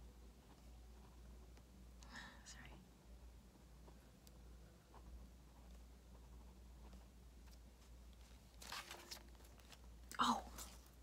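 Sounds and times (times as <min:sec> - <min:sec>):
faint low hum: 0:00.0 - 0:11.0
soft whisper: 0:02.0 - 0:03.0, 0:10.0 - 0:11.0.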